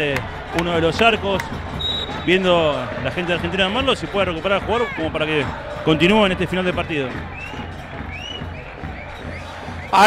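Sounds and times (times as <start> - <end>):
crowd singing and chanting: 0.0 - 10.0.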